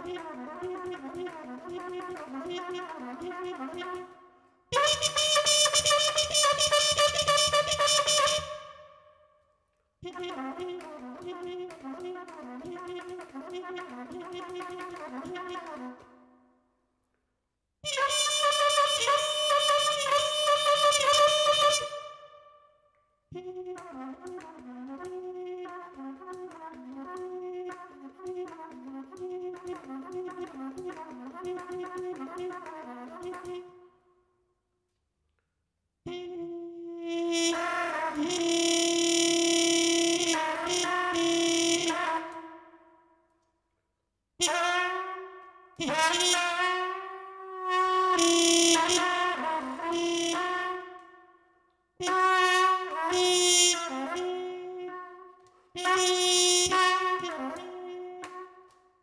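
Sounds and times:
solo trumpet improvising: 0.0 - 9.1, 10.0 - 16.2, 17.8 - 22.5, 23.3 - 33.9, 36.1 - 42.8, 44.4 - 51.3, 52.0 - 58.8.

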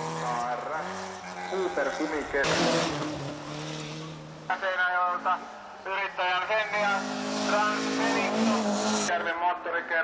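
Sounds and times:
rally car engine revving: 0.0 - 9.1.

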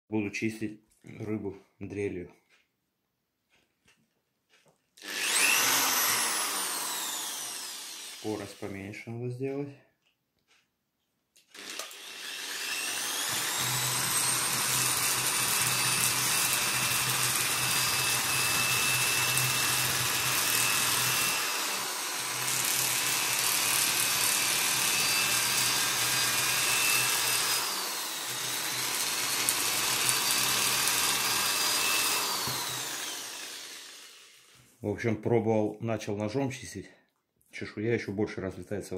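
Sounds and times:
electric drill motor whine: 5.0 - 8.7, 11.5 - 34.5.

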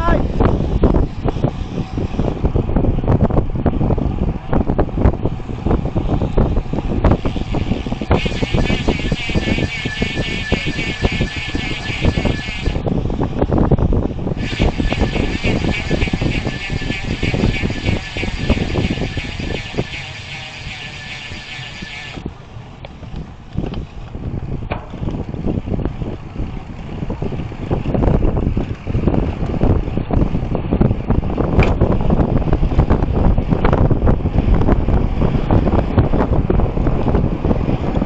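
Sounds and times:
road rumble: 0.0 - 38.0
wind rush: 0.0 - 38.0
bicycle freewheel buzz: 0.6 - 2.4, 5.8 - 13.3, 14.3 - 22.3.

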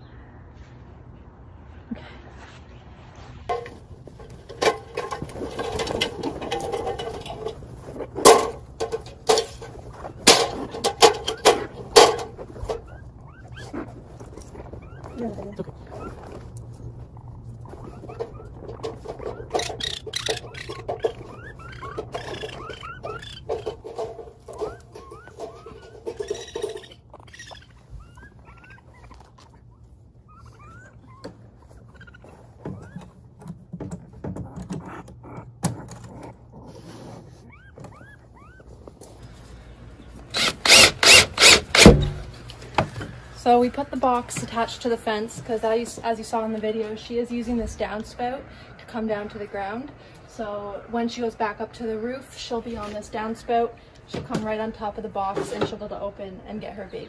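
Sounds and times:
baby raccoons squeaking: 6.6 - 42.4
cordless drill driving a screw: 40.3 - 42.0.

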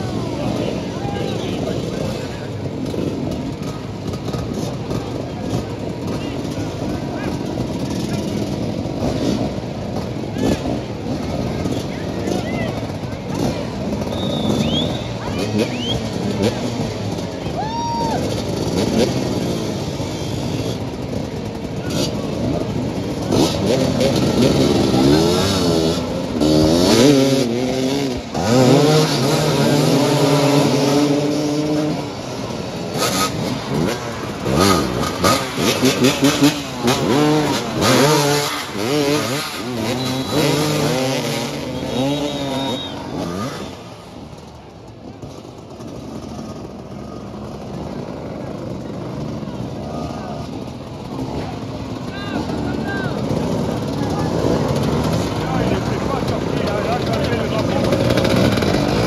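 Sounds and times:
motorcycles revving and accelerating: 0.0 - 59.0.

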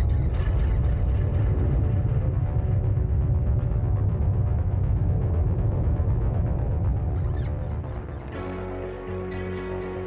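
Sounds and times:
deep rumble: 0.0 - 9.0
sustained music tones: 0.0 - 10.0.

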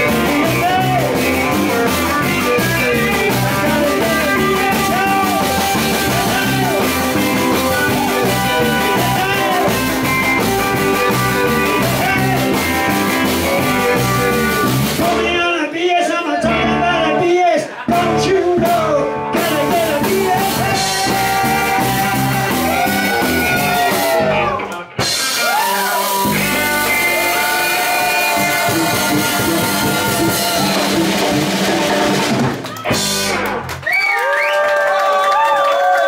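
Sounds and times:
electric guitars: 0.0 - 15.4, 16.4 - 34.4
drum kit: 0.0 - 15.5, 17.9 - 34.0
bass guitar: 0.0 - 34.4.

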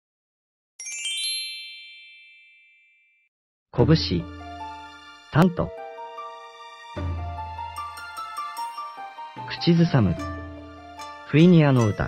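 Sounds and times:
bright bell-like chime: 0.8 - 3.3, 7.7 - 12.0
synthesized narrator voice: 3.8 - 4.4, 5.4 - 5.8, 9.5 - 10.2
soft background music: 3.8 - 12.0.

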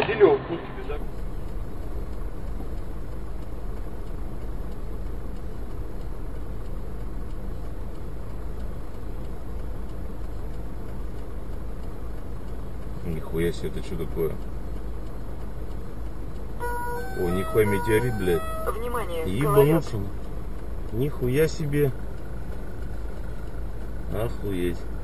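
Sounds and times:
car idling low rumble: 0.0 - 25.0.

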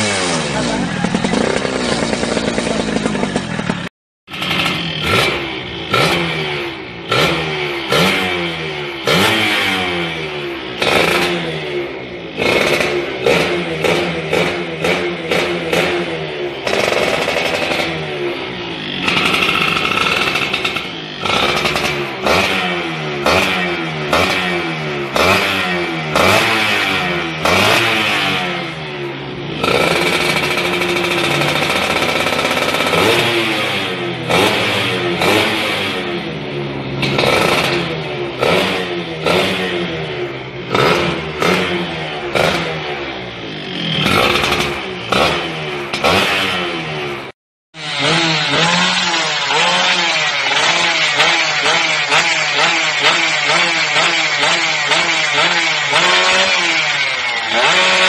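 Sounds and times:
two-stroke engine revving: 0.0 - 58.0.

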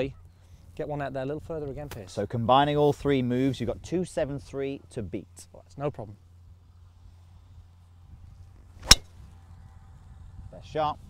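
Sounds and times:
golf ball struck with sharp crack: 8.8 - 9.2
golf club downswing rush: 8.8 - 9.2.

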